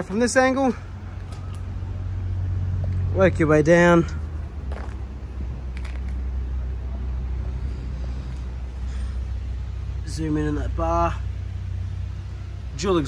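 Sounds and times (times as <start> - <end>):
low urban background rumble: 0.0 - 13.0.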